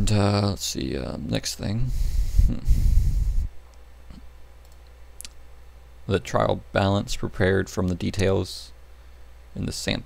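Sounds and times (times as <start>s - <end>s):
rush of noise on microphone: 2.0s - 3.5s.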